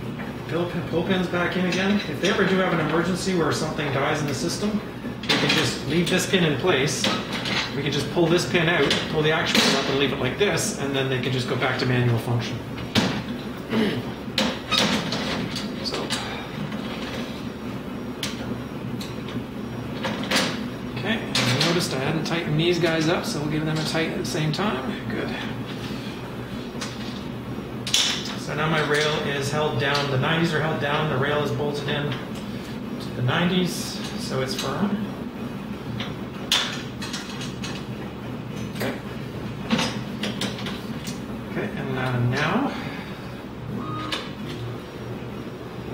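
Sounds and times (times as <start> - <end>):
steady low hum: 0.0 - 45.9.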